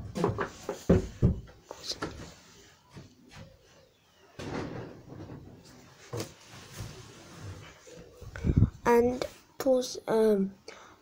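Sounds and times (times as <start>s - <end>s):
rustling and shuffling: 0.0s - 9.6s.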